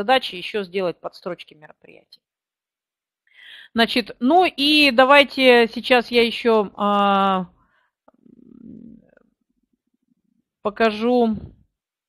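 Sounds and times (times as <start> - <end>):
woman murmuring: 8.2 - 9.1.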